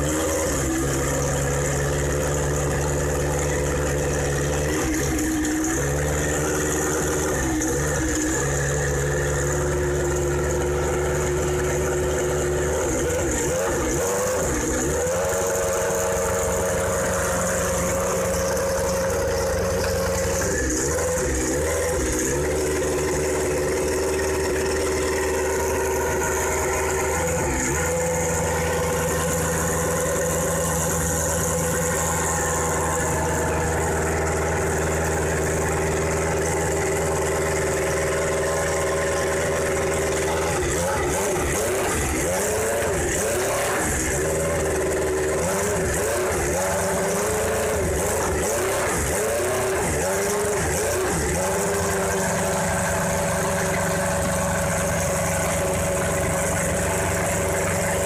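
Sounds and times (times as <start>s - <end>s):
racing car engine idling: 0.0s - 58.0s.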